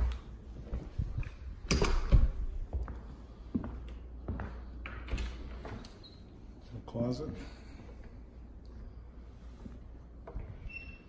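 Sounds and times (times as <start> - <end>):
footsteps on hardwood floor: 0.0 - 1.2, 2.1 - 5.8, 9.5 - 10.6.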